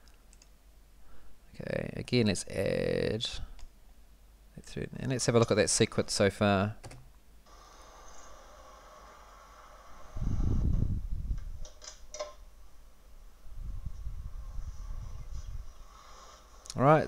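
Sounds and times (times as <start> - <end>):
steady hum: 0.0 - 17.0
low rumbling and rustling: 8.4 - 11.8, 12.4 - 16.6.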